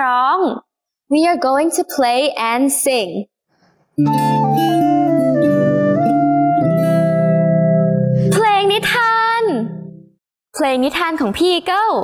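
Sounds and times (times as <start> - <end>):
flute melody: 4.0 - 8.4.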